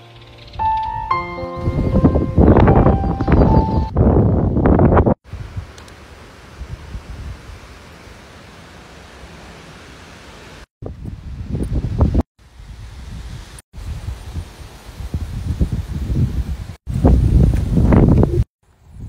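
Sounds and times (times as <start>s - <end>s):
wind buffeting microphone: 1.5s - 5.8s, 6.6s - 7.7s, 10.8s - 19.0s.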